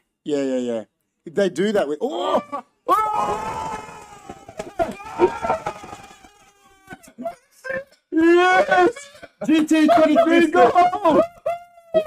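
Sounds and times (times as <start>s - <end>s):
men shouting and cheering: 2.2s - 6.3s.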